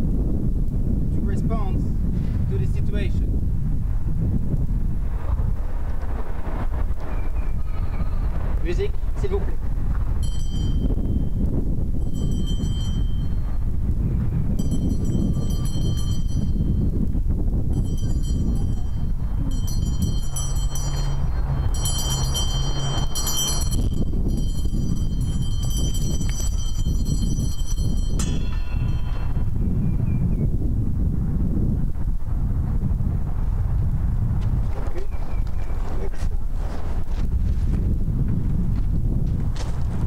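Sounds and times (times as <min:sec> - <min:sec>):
wind rumble on microphone: 0:00.0 - 0:40.0
metallic jingle: 0:10.2 - 0:11.4, 0:12.0 - 0:13.6, 0:14.5 - 0:16.9, 0:17.8 - 0:29.6.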